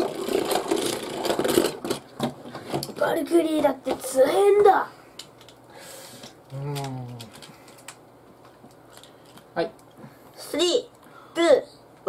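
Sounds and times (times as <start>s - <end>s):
spinning top rattling whir: 0.0s - 2.0s
clicks and knocks of handling: 6.2s - 10.0s.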